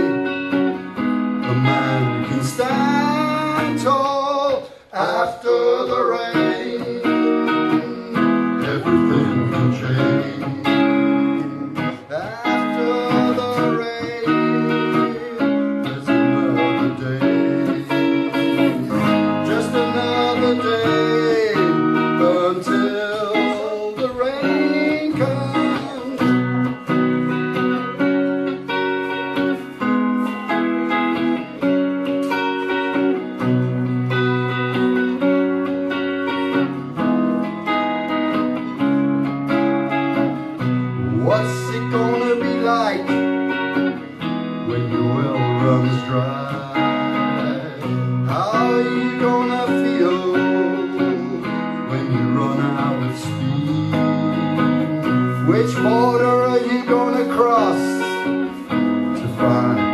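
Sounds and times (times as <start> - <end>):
guitar chords: 0.0 - 59.9
lead guitar solo with bent notes: 0.0 - 59.9.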